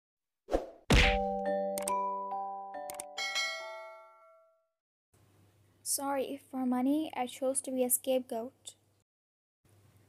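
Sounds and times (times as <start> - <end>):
impact hit: 0.9 - 1.3
ringing chimes and tinkles: 1.4 - 4.6.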